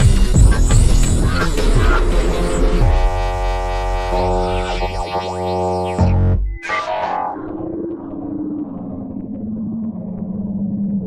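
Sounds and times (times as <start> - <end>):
deep low hum: 0.0 - 6.6
buzzy electronic drone: 0.0 - 7.6
sweeping tones rising and falling: 2.0 - 8.4.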